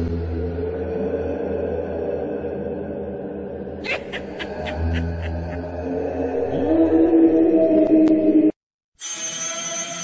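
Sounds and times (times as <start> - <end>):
low dark drone: 0.0 - 8.5.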